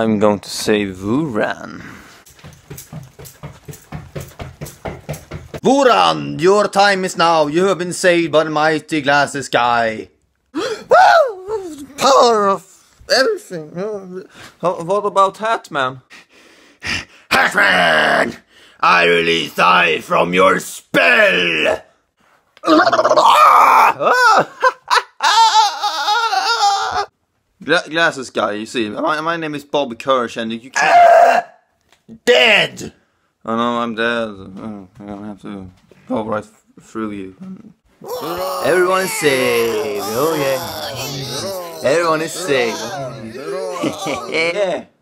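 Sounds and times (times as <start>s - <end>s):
man crying out: 10.6s - 12.0s, 22.6s - 24.6s, 25.2s - 27.1s, 38.0s - 44.6s
man laughing: 24.0s - 27.1s, 38.0s - 44.6s
man shouting: 30.8s - 31.6s, 38.0s - 44.6s.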